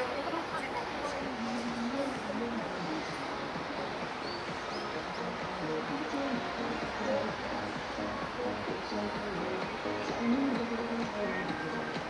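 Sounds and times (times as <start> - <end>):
distant voices: 0.0 - 12.0
street noise: 0.0 - 12.0.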